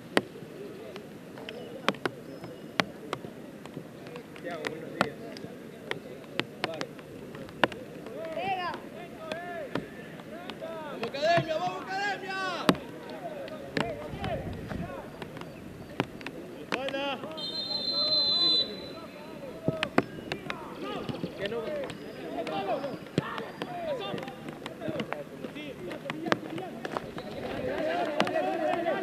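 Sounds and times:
players shouting: 4.0s - 29.0s
referee's whistle: 17.3s - 19.2s, 27.1s - 27.6s.

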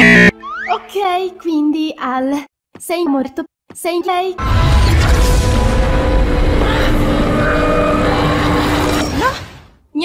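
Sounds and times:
deep rumbling drone: 4.4s - 9.2s.

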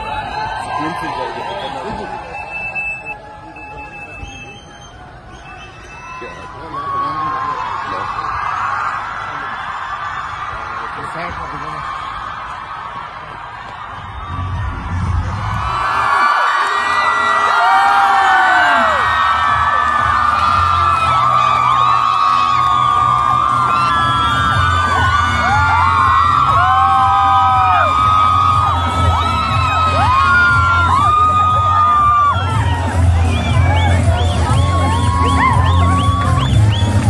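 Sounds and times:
large crowd cheering and shouting: 0.0s - 37.0s.

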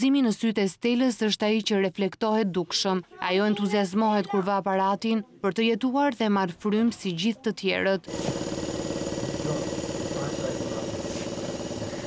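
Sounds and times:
nebulizer motor buzzing hum: 8.1s - 12.0s.

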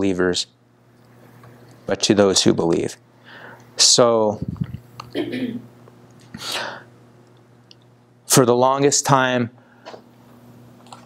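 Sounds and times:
man sharp breath: 6.3s - 6.9s.

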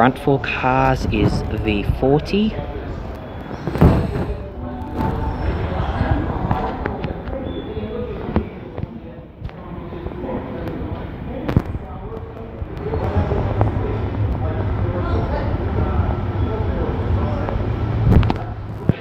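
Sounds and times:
train rumbling past: 2.6s - 6.9s, 12.8s - 18.8s.

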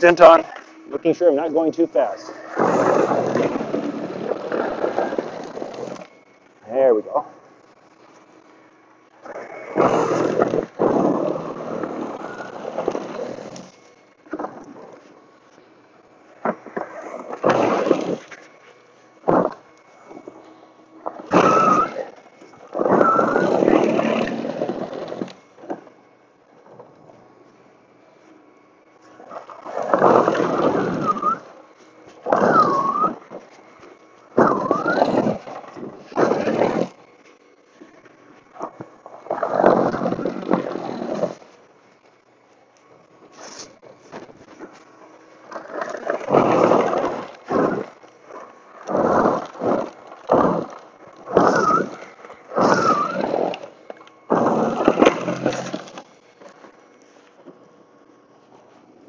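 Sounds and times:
snow blower throwing snow: 0.0s - 6.1s, 9.2s - 15.2s, 16.4s - 18.4s, 19.2s - 25.9s, 29.0s - 33.6s, 34.3s - 37.0s, 38.6s - 41.6s, 43.3s - 56.6s
whine bending in pitch: 0.0s - 59.0s.

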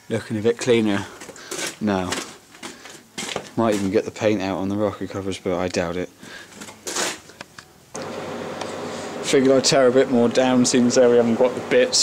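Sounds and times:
background hiss with faint hum: 0.0s - 12.0s.

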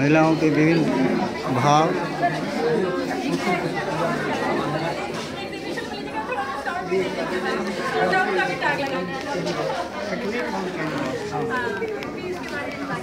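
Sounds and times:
several people talking at once: 0.0s - 13.0s.

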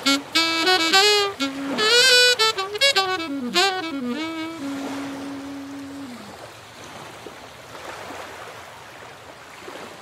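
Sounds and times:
waves breaking on a beach: 0.0s - 10.0s.

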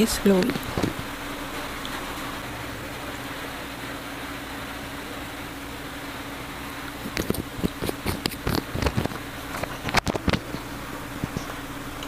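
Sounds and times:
steady hiss with low hum: 0.0s - 12.0s.

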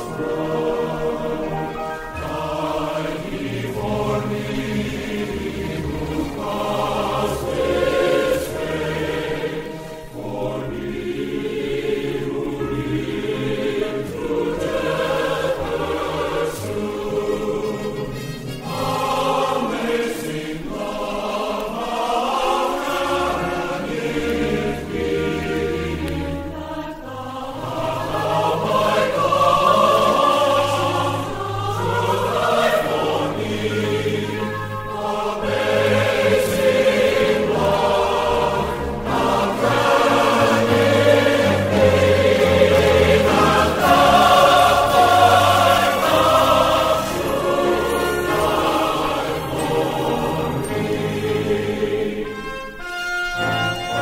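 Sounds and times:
choir singing sacred music: 0.0s - 54.0s
instrumental accompaniment: 0.0s - 54.0s.

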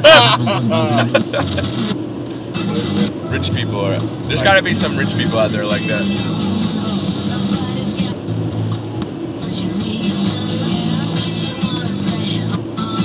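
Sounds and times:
music from car stereo: 0.0s - 13.0s
road and engine noise: 0.0s - 13.0s.

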